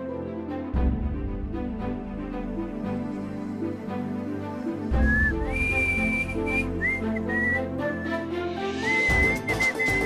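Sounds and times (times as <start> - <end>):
background music: 0.0 - 10.0
man whistling: 5.0 - 8.2, 8.8 - 10.0.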